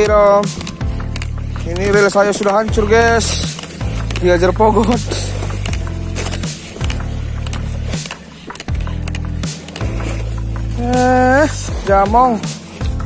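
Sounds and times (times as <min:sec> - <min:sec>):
music with bass line and beat: 0:00.0 - 0:13.0.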